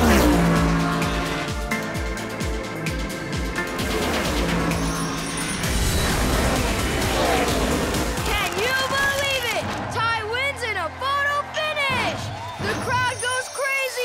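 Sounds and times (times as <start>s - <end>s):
upbeat cartoon music: 0.0s - 14.0s.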